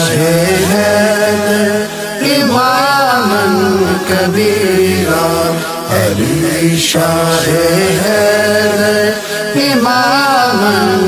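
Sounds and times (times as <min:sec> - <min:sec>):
person singing long melismatic notes: 0:00.0 - 0:11.0.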